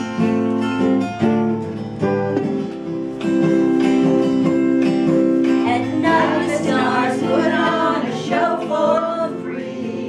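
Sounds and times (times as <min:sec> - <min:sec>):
choir singing in harmony: 0:05.7 - 0:10.0.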